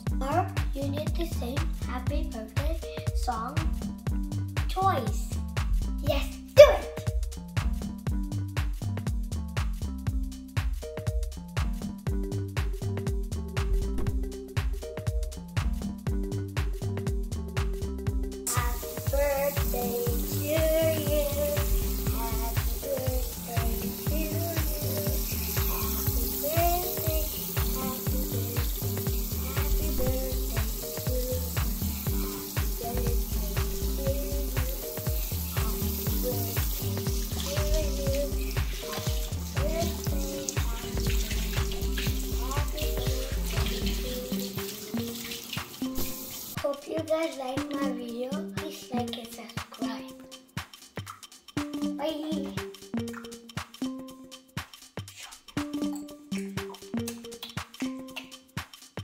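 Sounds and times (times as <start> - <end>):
background music with a beat: 0.0 - 59.0
faucet water running into sink: 18.5 - 46.6
hands being scrubbed: 34.4 - 46.6.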